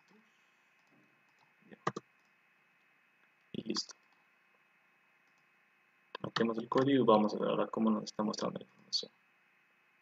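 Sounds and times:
keyboard and mouse clicks: 0.8s - 2.4s, 6.1s - 7.0s.

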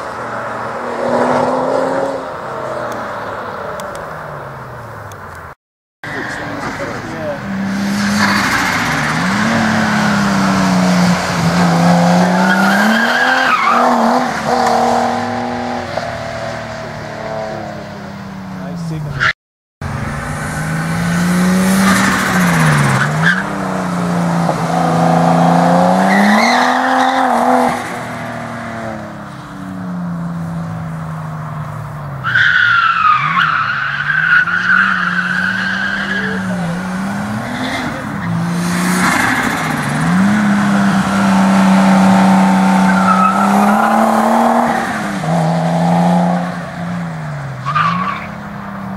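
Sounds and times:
car engine revving: 0.0s - 5.0s, 6.0s - 48.9s
tyres squealing: 32.2s - 38.5s.

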